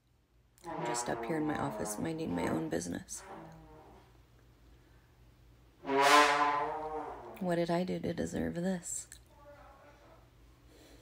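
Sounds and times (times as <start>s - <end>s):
brass instrument long note: 0.6s - 4.1s, 5.8s - 7.4s.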